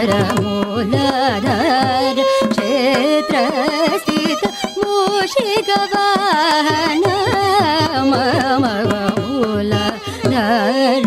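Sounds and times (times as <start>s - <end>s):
percussion strokes: 0.0s - 11.0s
woman singing ornamented melody: 0.0s - 11.0s.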